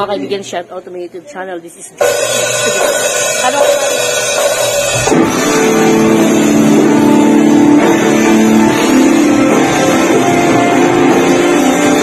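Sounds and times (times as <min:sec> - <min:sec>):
distorted electric guitars: 0:02.0 - 0:12.0.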